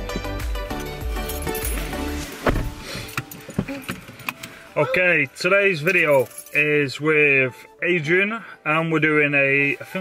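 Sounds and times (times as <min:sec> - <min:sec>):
keys jangling: 0:00.7 - 0:02.2, 0:05.8 - 0:06.7.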